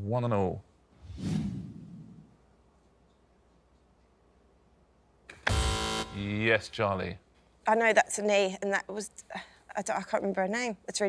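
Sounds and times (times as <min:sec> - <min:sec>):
game show buzzer: 0:05.4 - 0:06.4.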